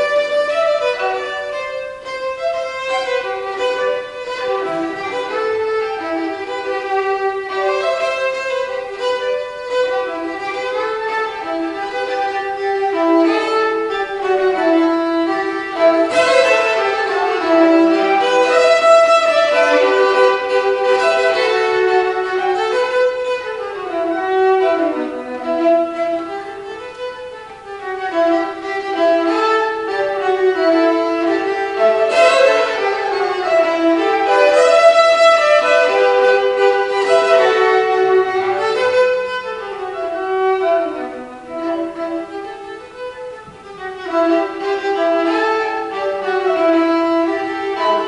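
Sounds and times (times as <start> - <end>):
solo violin melody: 0.0 - 48.0.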